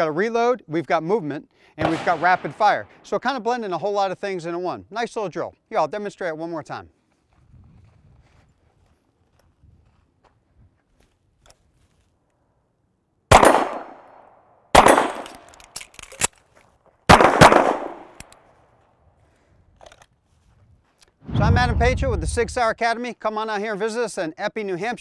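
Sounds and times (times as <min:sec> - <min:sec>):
pistol shots: 0:01.8 - 0:03.0, 0:13.3 - 0:15.6, 0:17.1 - 0:18.3
metallic clicks of pistol reload: 0:15.0 - 0:16.5, 0:18.1 - 0:18.4.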